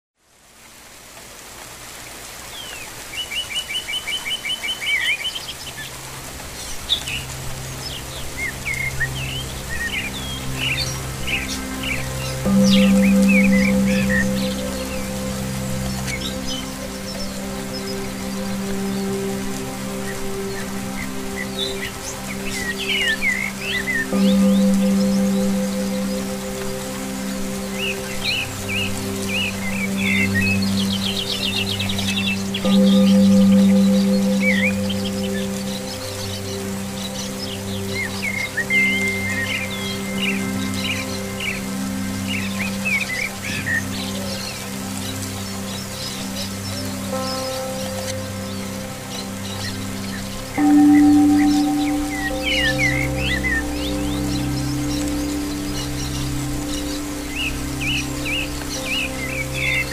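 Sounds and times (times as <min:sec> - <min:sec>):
rain hissing: 0:00.2 - 0:59.9
ambient music with low notes: 0:00.3 - 0:59.9
small birds chirping and whistling: 0:20.0 - 0:59.9.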